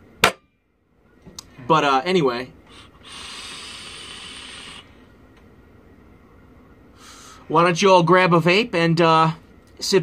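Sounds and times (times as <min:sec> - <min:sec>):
breathy noise: 0:02.6 - 0:05.2
e-cigarette drag hiss: 0:02.7 - 0:04.9.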